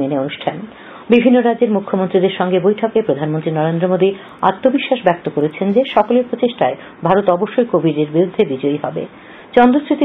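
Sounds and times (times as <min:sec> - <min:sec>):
newsreader speaking: 0:02.1 - 0:07.4.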